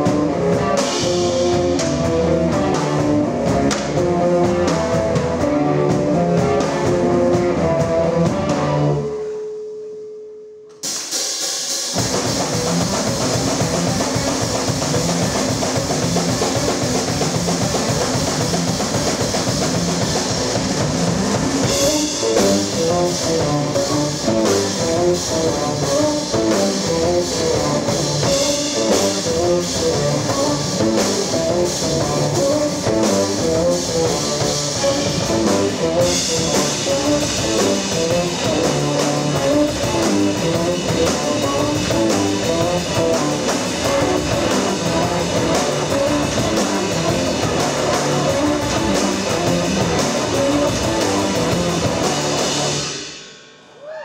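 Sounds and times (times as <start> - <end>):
live band playing: 0.0 - 9.4, 10.8 - 53.7.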